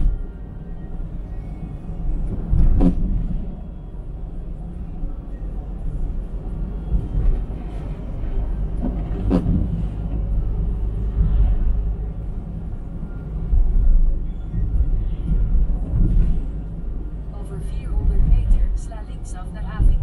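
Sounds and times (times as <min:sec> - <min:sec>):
car interior road rumble: 0:00.0 - 0:20.0.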